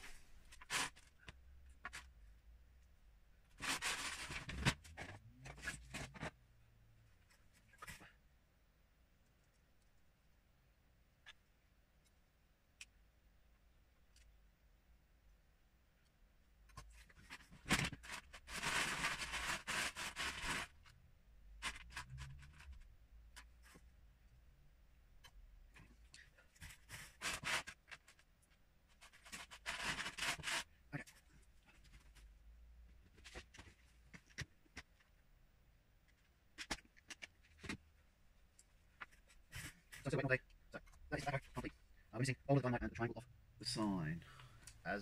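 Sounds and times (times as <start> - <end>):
rummaging through plastic pieces: 17.0 - 20.8.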